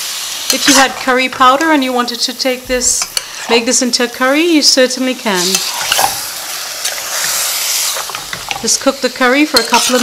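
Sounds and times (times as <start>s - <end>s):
chicken sizzling in a pot: 0.0s - 10.0s
spoon scraping a pot: 0.5s - 1.1s, 5.3s - 8.7s, 9.5s - 10.0s.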